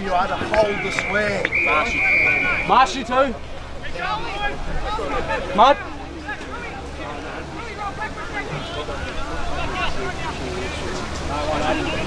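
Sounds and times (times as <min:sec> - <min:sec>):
indistinct voices talking: 0:00.0 - 0:12.0.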